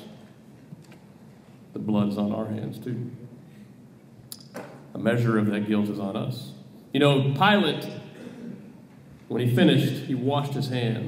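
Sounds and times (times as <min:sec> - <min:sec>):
mouth click: 0:04.3 - 0:04.5.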